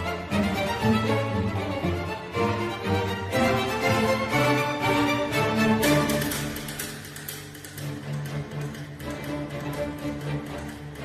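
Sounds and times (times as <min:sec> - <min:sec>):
string orchestra playing softly: 0:00.0 - 0:11.0.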